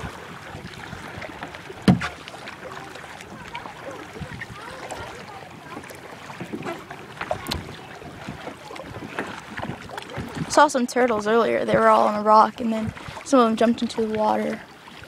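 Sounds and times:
paddle knocks: 0.0s - 12.1s
paddle water swishing and dripping: 0.0s - 15.0s.

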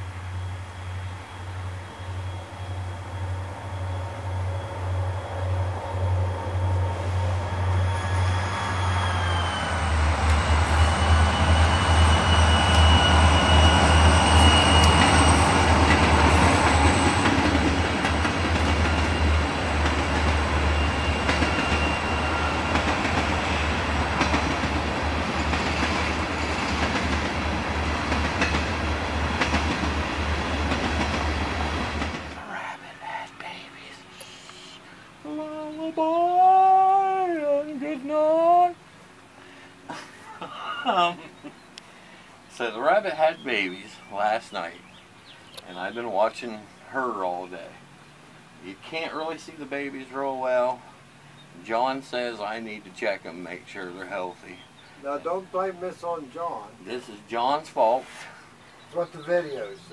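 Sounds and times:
high wheel squeals: 0.4s - 24.5s, 25.2s - 26.8s
train rumble and clickety-clack: 0.8s - 34.0s.

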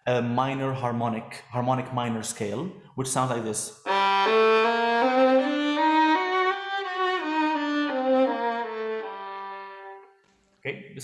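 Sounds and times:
solo violin playing a scale: 3.8s - 10.2s.

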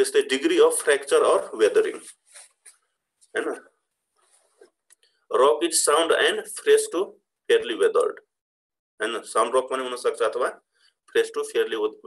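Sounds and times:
man speaking: 0.0s - 2.1s, 3.3s - 3.8s, 5.3s - 8.3s, 9.0s - 12.0s.

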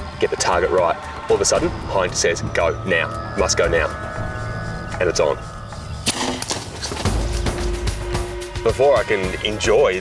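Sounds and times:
dart rifle shot: 6.0s - 6.7s.

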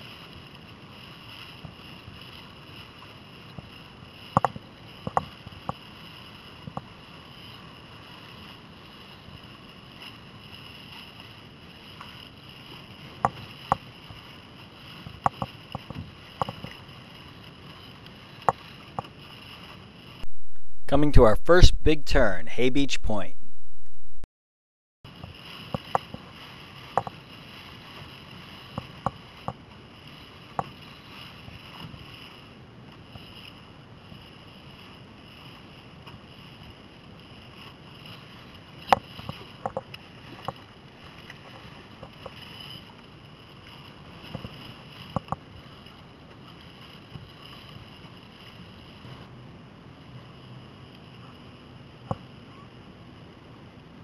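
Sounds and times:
wind and water rushing: 25.1s - 54.0s.

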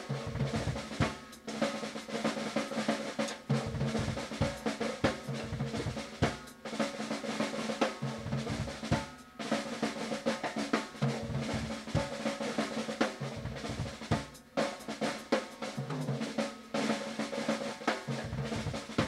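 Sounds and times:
drum kit rapid strokes: 0.0s - 19.0s.

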